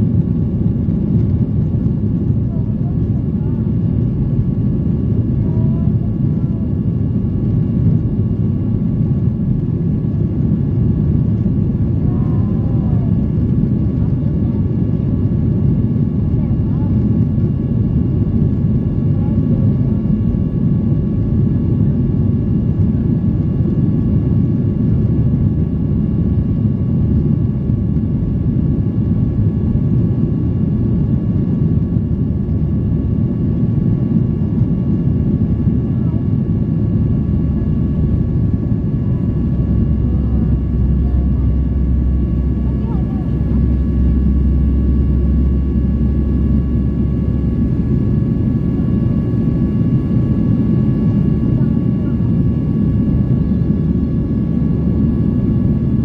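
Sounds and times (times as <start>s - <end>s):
airplane cabin rumble: 0.0s - 56.0s
thin steady whining tones: 34.0s - 56.0s.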